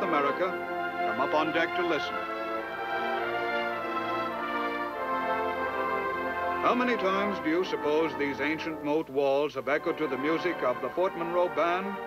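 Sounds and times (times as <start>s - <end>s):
brass band playing slow chords: 0.0s - 12.0s.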